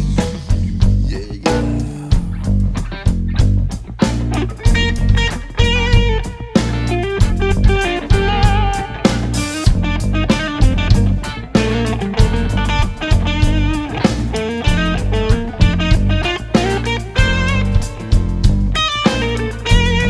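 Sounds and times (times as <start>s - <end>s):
bass guitar: 0.0s - 20.0s
electric guitars: 0.0s - 20.0s
steady drum beat: 0.0s - 20.0s.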